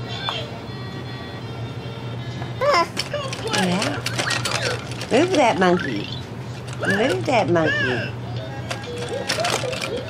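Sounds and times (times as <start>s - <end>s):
toy parts clicking: 3.0s - 6.0s, 8.7s - 10.0s.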